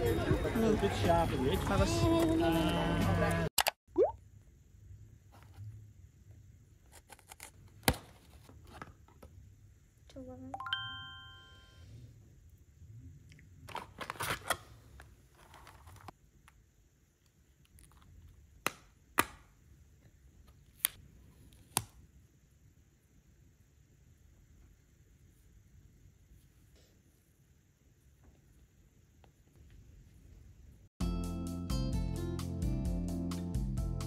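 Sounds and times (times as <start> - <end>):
short chime: 10.6 - 11.8.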